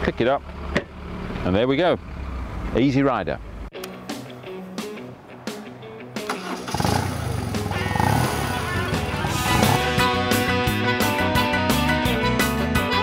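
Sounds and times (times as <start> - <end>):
background music: 3.7 - 13.0
electric guitar: 3.8 - 13.0
motorcycle engine starting and revving: 6.2 - 10.7.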